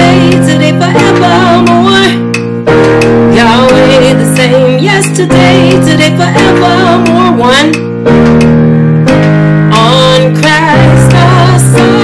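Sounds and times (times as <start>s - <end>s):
person singing melody: 0.0s - 2.4s, 3.2s - 8.0s, 9.0s - 12.0s.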